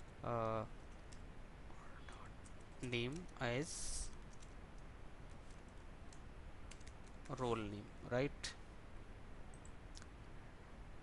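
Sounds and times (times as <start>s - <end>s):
keyboard and mouse clicks: 4.1s - 4.6s, 5.3s - 7.4s, 9.5s - 10.1s.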